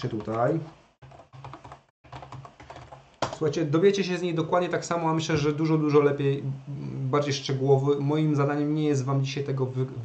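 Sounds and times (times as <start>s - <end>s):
keyboard typing: 0.0s - 3.5s.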